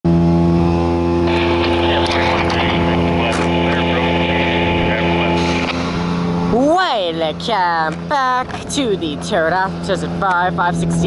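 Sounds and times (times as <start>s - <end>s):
diesel truck engine running: 0.1s - 11.0s.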